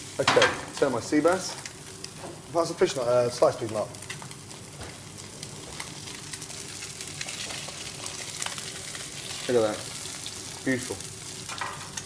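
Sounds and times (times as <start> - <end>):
fish sizzling in a pan: 0.0 - 12.0.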